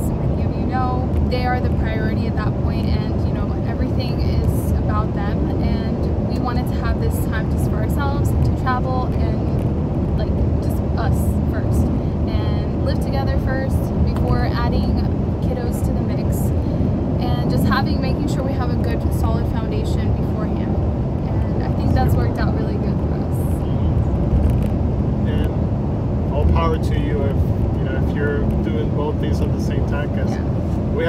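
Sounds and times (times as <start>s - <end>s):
woman talking: 0.0s - 9.6s, 10.2s - 23.6s
car road and engine noise: 0.0s - 31.0s.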